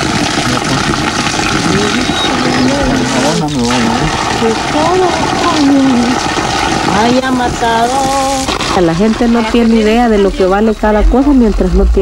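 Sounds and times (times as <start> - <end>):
water gushing onto rocks: 0.0 - 10.2
person speaking: 1.6 - 6.2.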